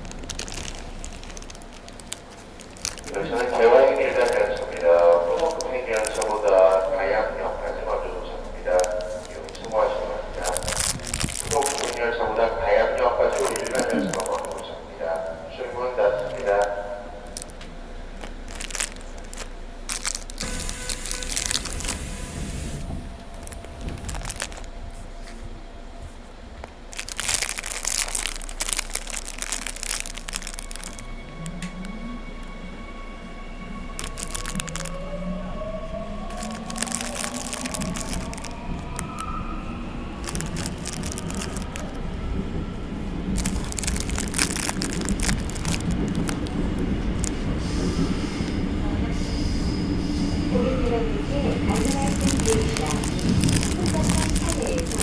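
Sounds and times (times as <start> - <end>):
train running noise: 0.0 - 55.0
electric train motor whine: 14.6 - 26.9.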